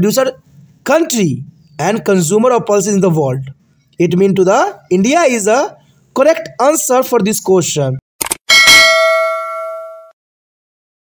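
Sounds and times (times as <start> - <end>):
bell ding: 8.5 - 10.2.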